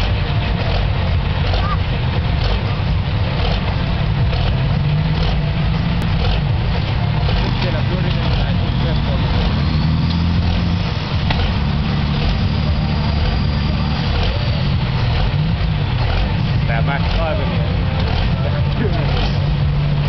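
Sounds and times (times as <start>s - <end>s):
tractor engine droning at low revs: 0.0s - 20.0s.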